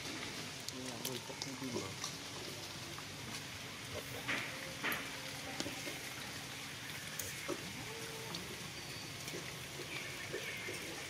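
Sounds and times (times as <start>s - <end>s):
rain on wet paving: 0.0s - 11.0s.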